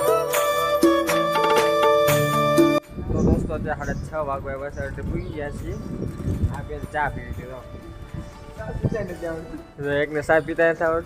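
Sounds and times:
man's voice: 3.0 - 7.8, 8.5 - 11.0.

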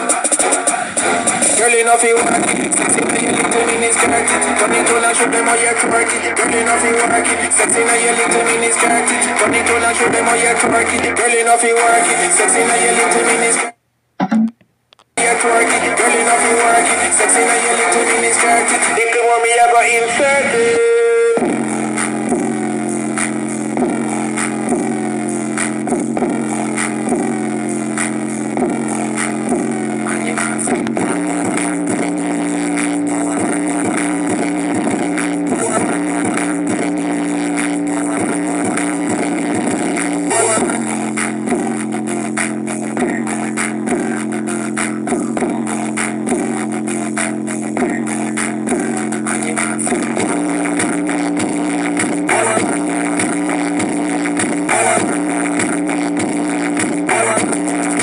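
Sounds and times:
music with deep bass and beat: 0.0 - 14.6, 15.2 - 58.0.

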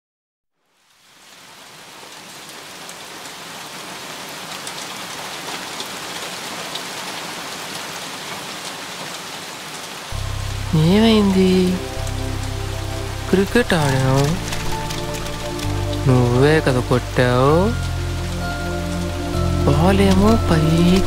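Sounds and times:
steady rain falling: 0.6 - 21.0.

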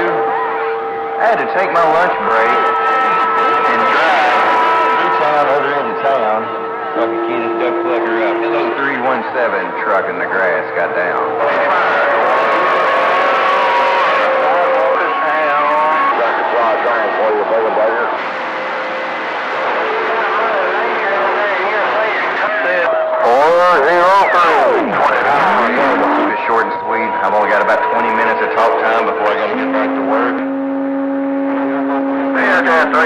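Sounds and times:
garbled radio voices: 0.0 - 33.0
swooping pitch sweep: 0.0 - 33.0
whistling radio tones: 0.0 - 33.0.

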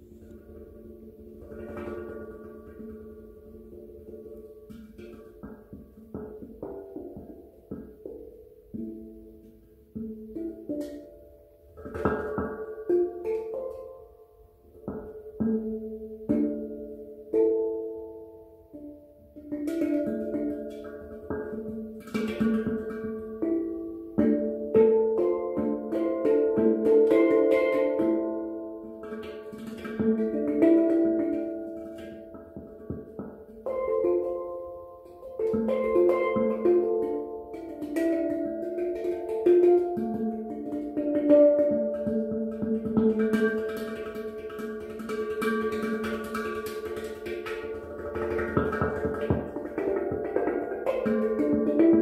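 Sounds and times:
handpan melody: 0.0 - 52.0.

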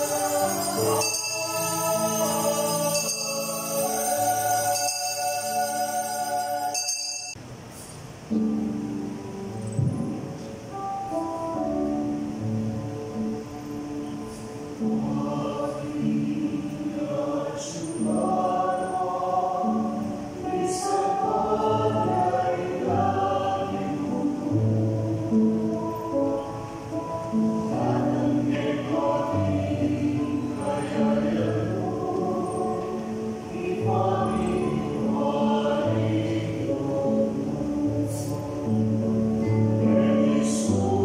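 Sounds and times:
mixed choir singing in harmony: 0.0 - 7.4, 13.1 - 41.0.

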